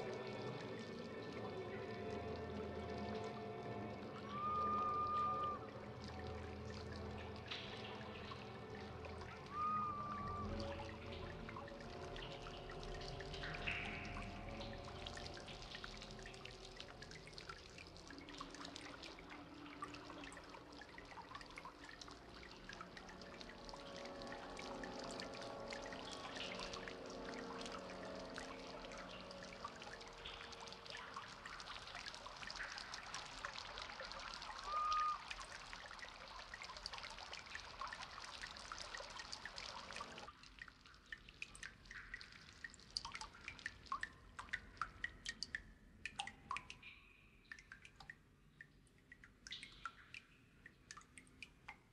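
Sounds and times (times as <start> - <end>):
water trickling and dripping: 0.0 - 51.9.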